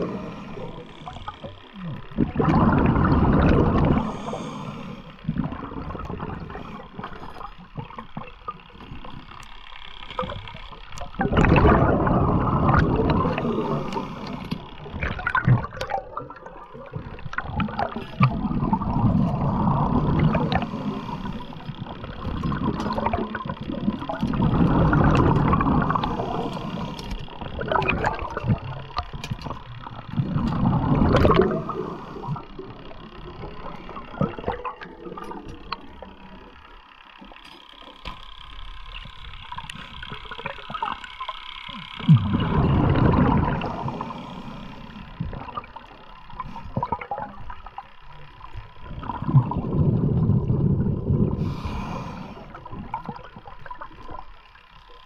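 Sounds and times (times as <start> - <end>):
rushing bubbling water underwater: 0.0 - 38.0, 38.8 - 55.0.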